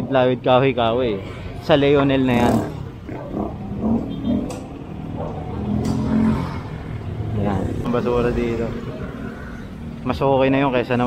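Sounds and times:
street traffic: 0:00.0 - 0:11.0.

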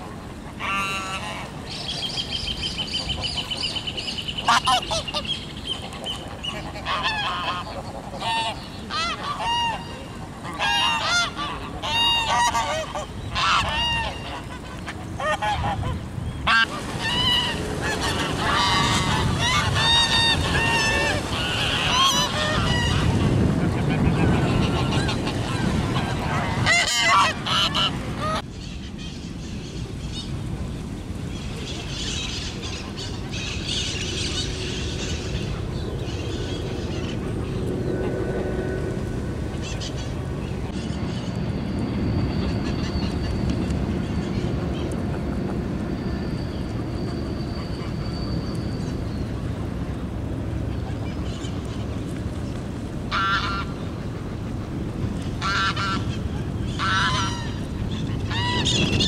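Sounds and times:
geese honking: 0:00.6 - 0:01.5, 0:04.4 - 0:28.4, 0:53.1 - 0:54.6, 0:55.3 - 0:59.0.

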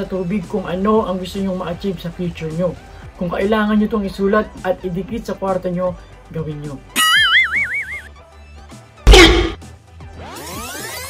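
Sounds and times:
cartoon boing: 0:07.0 - 0:08.1, 0:09.1 - 0:09.6.

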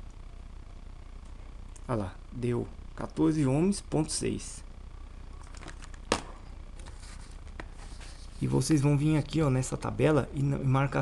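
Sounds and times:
low steady hum: 0:00.0 - 0:11.0
quiet handling noises: 0:05.3 - 0:09.9.

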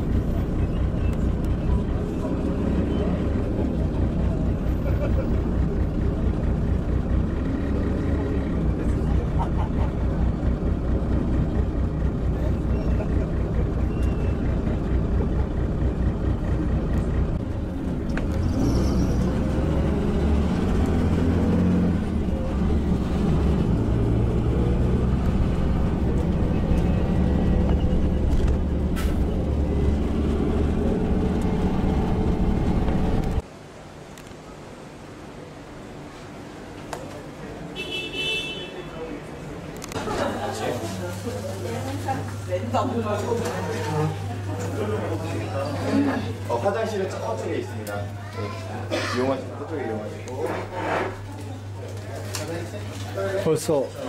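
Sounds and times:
vehicle rumble from inside cabin: 0:00.0 - 0:33.5
passengers chattering: 0:00.0 - 0:33.6, 0:34.2 - 0:54.0.

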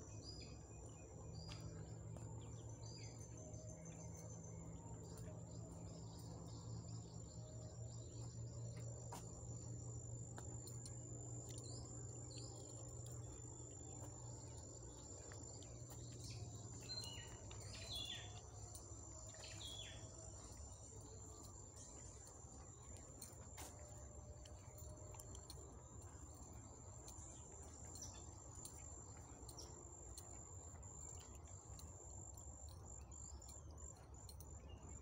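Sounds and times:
bird chirps: 0:00.0 - 0:35.0
low steady rumble: 0:00.0 - 0:35.0.

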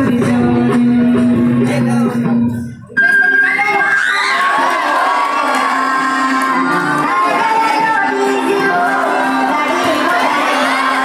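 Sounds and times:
dance music: 0:03.0 - 0:11.0
audience cheering and whooping: 0:03.4 - 0:11.0.

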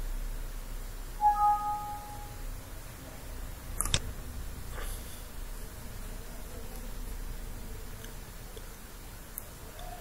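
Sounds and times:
two-note system alert chime: 0:01.2 - 0:02.4.

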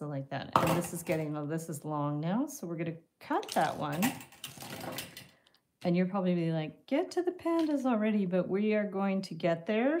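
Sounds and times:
wire scraping and clicking: 0:03.4 - 0:05.6.

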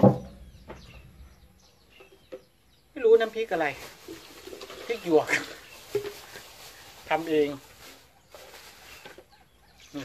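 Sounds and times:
faint birds chirping: 0:00.0 - 0:10.0.

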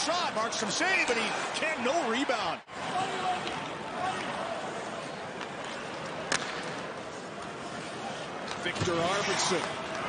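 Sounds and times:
crowd noise: 0:00.0 - 0:10.0
hockey stick striking puck: 0:05.6 - 0:06.6.

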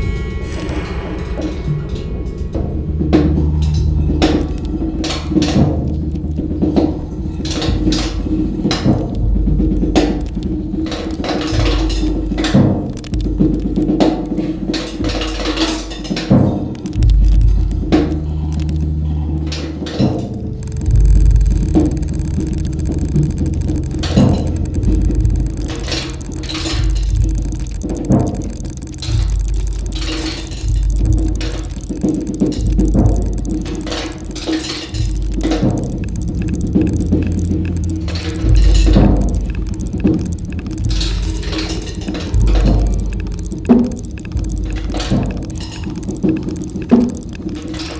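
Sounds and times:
steady low drone: 0:00.0 - 0:15.4, 0:16.6 - 0:47.9.

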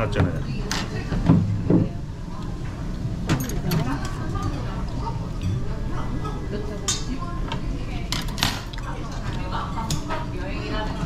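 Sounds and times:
low background hum: 0:00.0 - 0:11.0
metal utensils clinking against bowls: 0:03.3 - 0:07.3.

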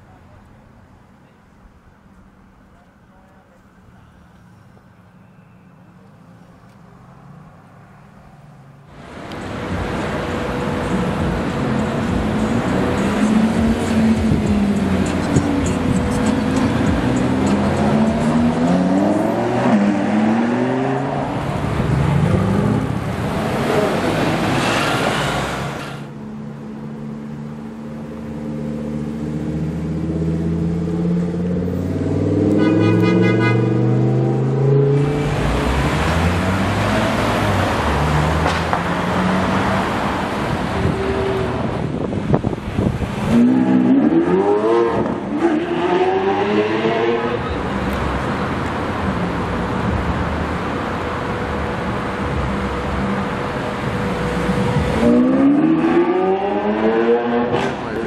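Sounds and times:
sports car engine accelerating: 0:09.3 - 0:25.9, 0:26.6 - 0:41.7, 0:43.1 - 0:50.2, 0:52.3 - 0:58.0.

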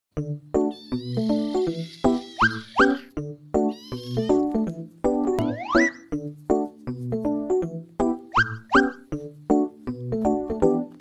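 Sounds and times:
background music with plucked notes: 0:00.1 - 0:11.0
kitten mewing: 0:03.7 - 0:04.4.

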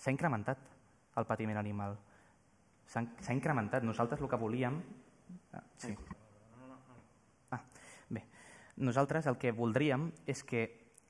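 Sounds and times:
man murmuring: 0:05.3 - 0:07.1.

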